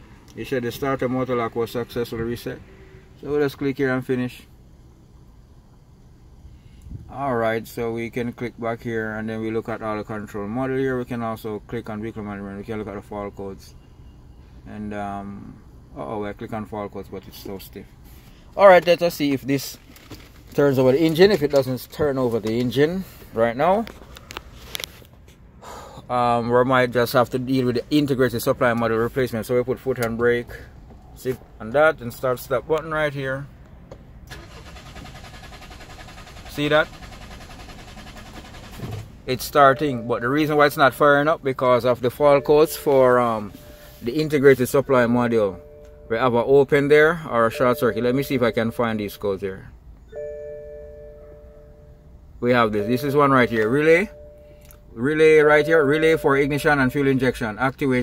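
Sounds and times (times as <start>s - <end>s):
two-tone electronic chime: 50.1s - 52.2s, 52.8s - 54.6s, 55.2s - 57.3s.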